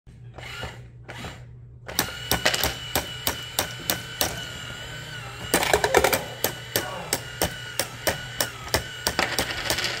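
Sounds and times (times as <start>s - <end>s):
small motor whine: 0.3s - 10.0s.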